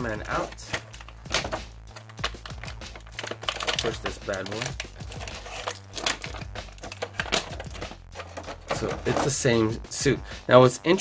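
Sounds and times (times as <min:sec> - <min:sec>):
plastic bag crinkling: 0:01.9 - 0:09.4.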